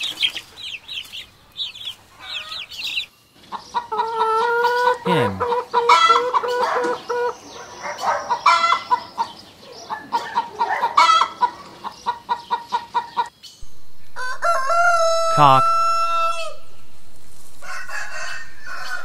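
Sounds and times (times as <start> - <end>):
chicks peeping: 0.0 - 13.3
hen clucking: 0.1 - 13.3.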